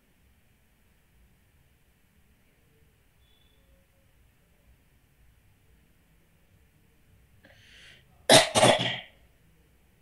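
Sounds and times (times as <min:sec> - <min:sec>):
faint intake of breath: 0:07.4 - 0:08.2
person coughing: 0:08.3 - 0:09.1.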